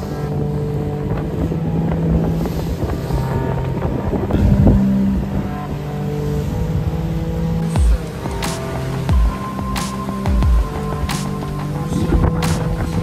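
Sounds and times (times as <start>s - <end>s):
background music: 0.0s - 13.0s
water rushing along hull: 0.0s - 13.0s
wind buffeting microphone: 0.0s - 13.0s.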